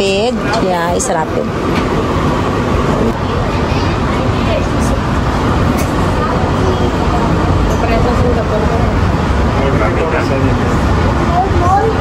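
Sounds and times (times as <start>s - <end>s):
train running low rumble: 0.0s - 12.0s.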